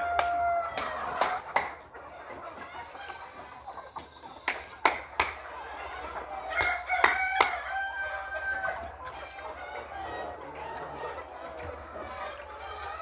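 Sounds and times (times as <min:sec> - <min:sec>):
hens clucking and calling: 0:00.0 - 0:13.0.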